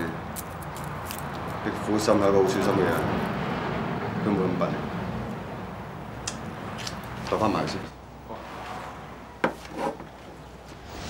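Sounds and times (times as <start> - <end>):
wood rubbing scrape: 9.5 - 10.4.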